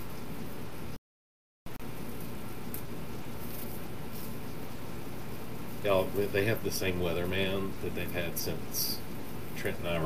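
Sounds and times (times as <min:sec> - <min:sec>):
steady background hum: 0:01.7 - 0:10.0
artificial fern rustling: 0:02.2 - 0:04.8.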